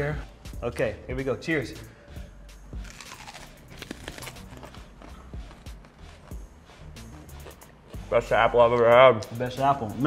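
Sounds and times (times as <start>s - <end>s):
quiet background music: 0.0s - 10.0s
crunching and chewing onion: 2.8s - 6.4s, 7.0s - 8.1s.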